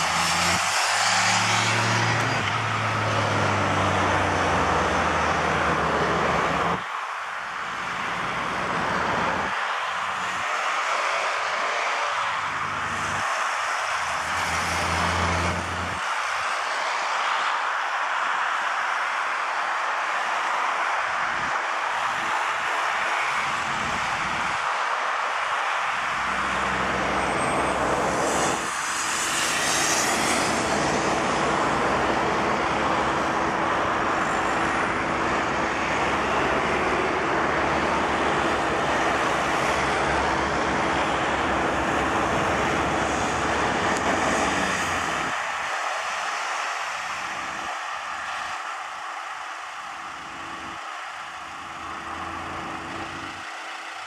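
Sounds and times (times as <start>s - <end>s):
vehicles passing on a road: 0.0s - 54.0s.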